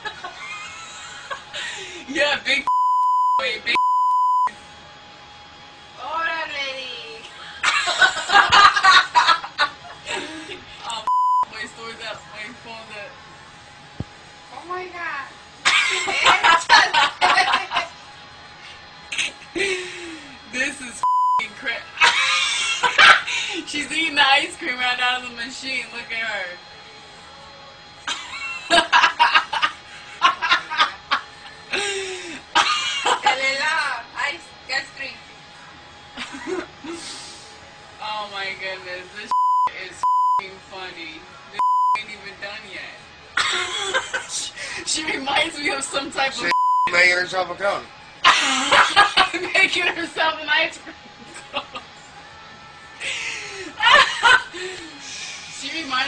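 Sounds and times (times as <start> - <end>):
censor bleep: 2.7 - 4.5, 11.0 - 11.5, 21.0 - 21.4, 39.3 - 40.4, 41.6 - 42.0, 46.5 - 47.0
person snickering: 7.4 - 10.7, 19.1 - 20.4, 31.7 - 33.2, 43.4 - 44.6, 48.2 - 49.5.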